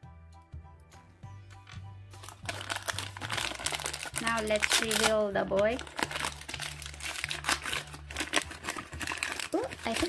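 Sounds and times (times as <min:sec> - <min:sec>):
quiet background music: 0:00.0 - 0:10.0
plastic wrapper crinkling: 0:01.7 - 0:10.0.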